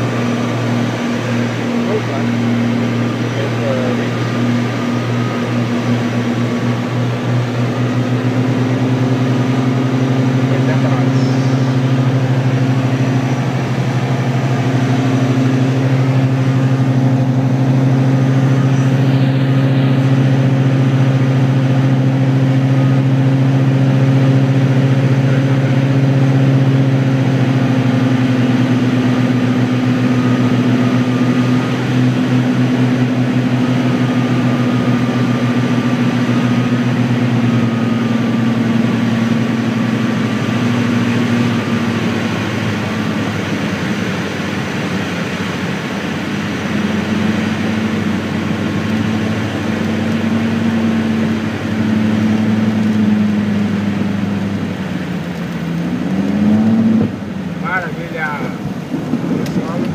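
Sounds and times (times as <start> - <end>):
aircraft engines and propellers droning: 0.0 - 59.9.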